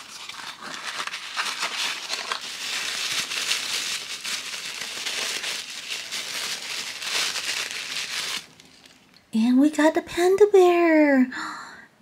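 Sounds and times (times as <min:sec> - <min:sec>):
tissue paper crinkling: 0:00.0 - 0:09.2.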